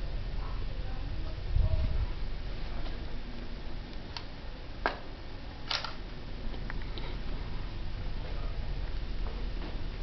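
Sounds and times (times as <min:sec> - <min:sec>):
steady low hum: 0:00.0 - 0:10.0
camera handling click: 0:05.7 - 0:06.0.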